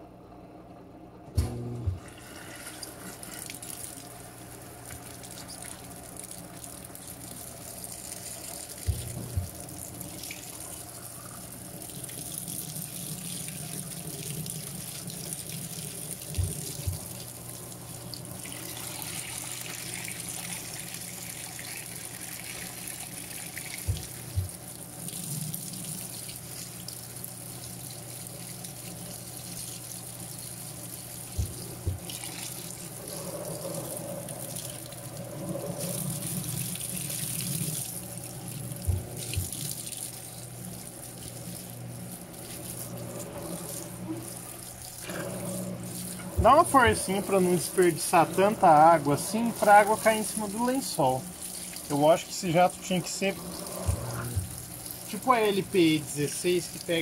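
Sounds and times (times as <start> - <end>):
water splashing into washing machine: 1.4 - 57.0.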